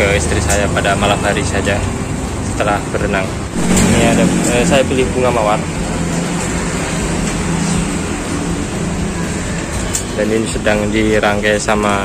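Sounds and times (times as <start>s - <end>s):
steady road traffic: 0.0s - 12.0s.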